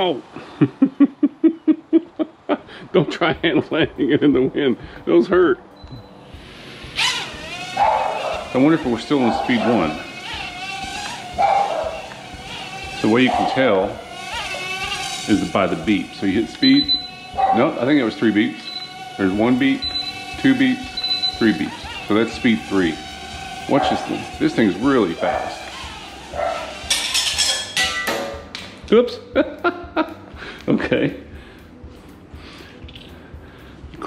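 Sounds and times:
drone propellers buzzing: 5.9s - 27.6s.

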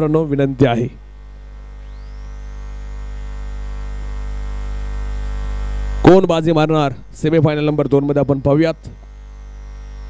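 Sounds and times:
electrical mains hum: 0.0s - 10.0s.

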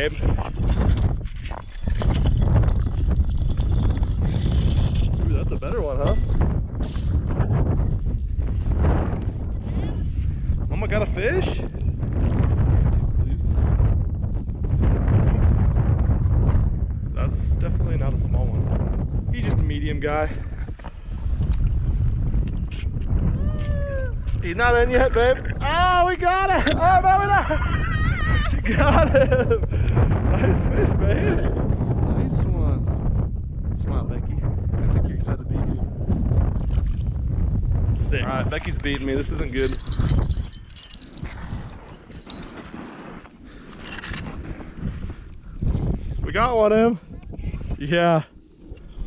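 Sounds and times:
wind rumble on microphone: 0.0s - 49.0s.

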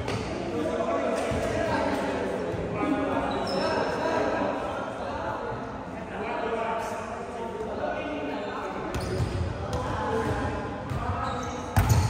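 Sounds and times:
players talking and calling: 0.0s - 12.0s.

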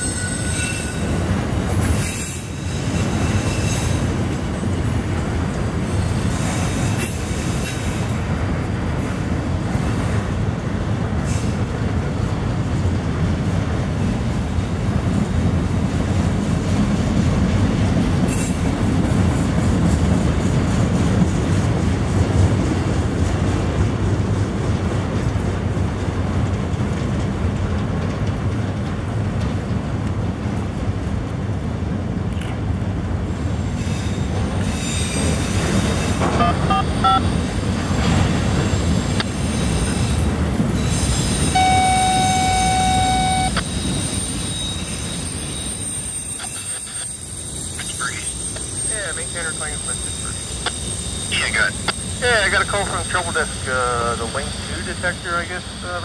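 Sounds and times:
freight cars rumbling on rails: 0.0s - 56.0s
steady high tone: 36.4s - 37.4s, 41.6s - 43.7s.

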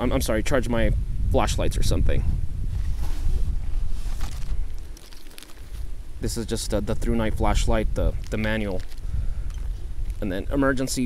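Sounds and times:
wind rumble on microphone: 0.0s - 11.0s
rummaging in a canvas pack: 2.7s - 6.0s, 8.1s - 10.2s
plastic bag rustling: 2.8s - 6.2s, 7.6s - 10.3s.

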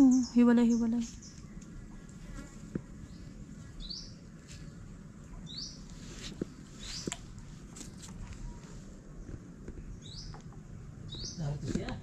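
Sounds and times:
wildlife chirping: 0.0s - 7.6s, 8.2s - 11.7s
faint steady background noise: 0.0s - 12.0s.

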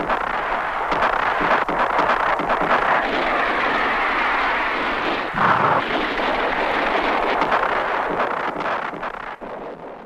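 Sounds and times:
dense rushing noise: 0.0s - 10.0s
scattered crackles: 0.0s - 10.0s.

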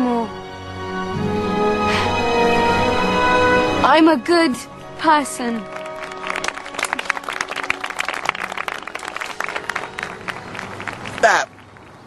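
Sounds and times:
faint sustained music: 0.0s - 11.2s
audience applauding: 5.6s - 12.0s.

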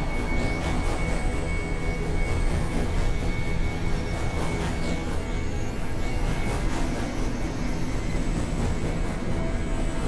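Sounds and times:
synthesizer noise drone: 0.0s - 10.0s.

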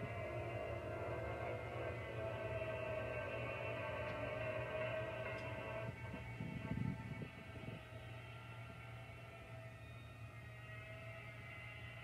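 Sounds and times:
droning background music: 0.0s - 12.0s.

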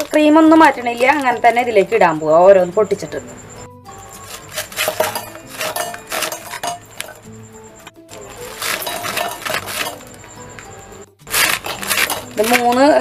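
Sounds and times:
background music: 0.0s - 13.0s
biscuits clinking in metal jar: 4.2s - 7.2s, 8.2s - 10.2s, 11.3s - 13.0s.

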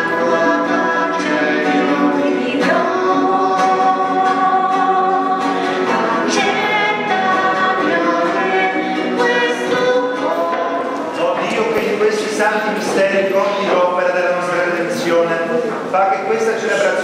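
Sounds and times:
strummed acoustic guitar: 0.0s - 15.8s
man and woman singing hymn: 0.0s - 17.0s.

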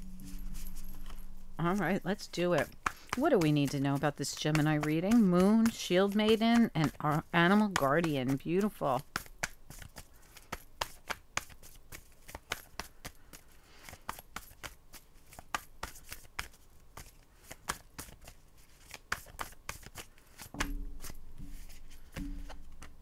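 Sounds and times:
low steady hum: 0.0s - 9.0s, 20.6s - 23.0s
cards being shuffled: 0.2s - 23.0s.

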